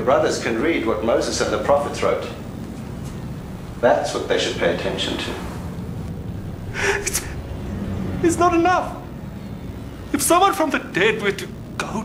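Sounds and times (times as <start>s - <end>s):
steady low rumble: 0.0s - 12.0s
man speaking: 6.7s - 7.4s, 8.2s - 9.1s.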